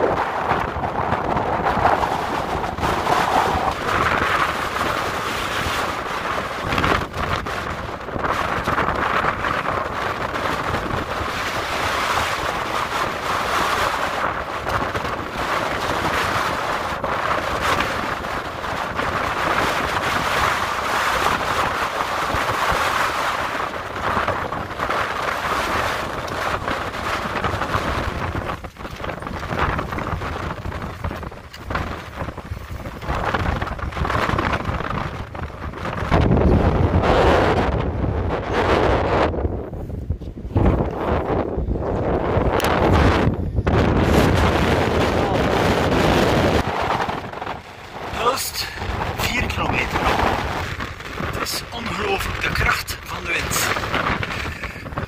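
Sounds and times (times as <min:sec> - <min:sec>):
wind gusts buffeting microphone: 0:00.0 - 0:55.0.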